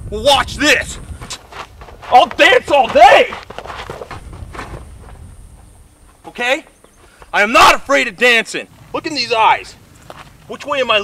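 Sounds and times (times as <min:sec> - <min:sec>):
feet scuffing on dirt: 0:00.6 - 0:07.5, 0:09.9 - 0:10.7.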